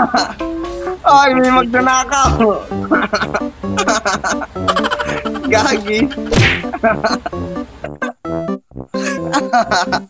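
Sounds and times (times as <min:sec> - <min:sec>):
background music: 0:00.0 - 0:10.0
slap whack: 0:06.3 - 0:06.7.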